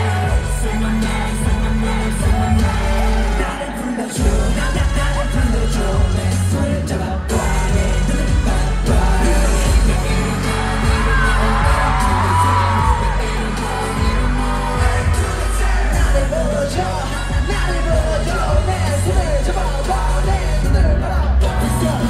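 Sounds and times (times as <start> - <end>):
crowd whooping and cheering: 0.0 - 22.0
live pop music with bass beat: 0.0 - 22.0
person singing: 0.0 - 22.0.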